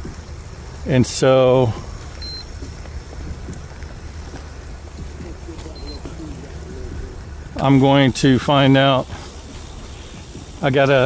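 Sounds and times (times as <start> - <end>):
low wind rumble on microphone: 0.0 - 11.0
trike rolling on paved path: 0.0 - 11.0.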